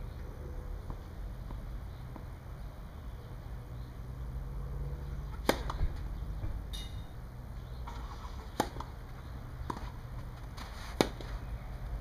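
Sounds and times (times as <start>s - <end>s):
tennis racket striking ball: 5.3s - 5.8s, 8.5s - 9.0s, 11.0s - 11.3s.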